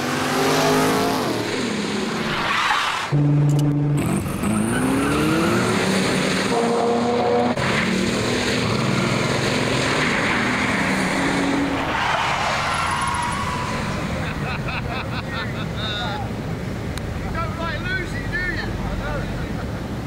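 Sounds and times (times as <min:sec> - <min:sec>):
car engine accelerating hard: 0:03.0 - 0:14.4.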